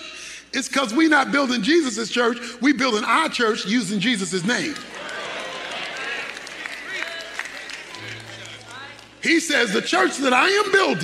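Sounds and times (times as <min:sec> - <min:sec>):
murmur of many voices: 0:04.5 - 0:10.2.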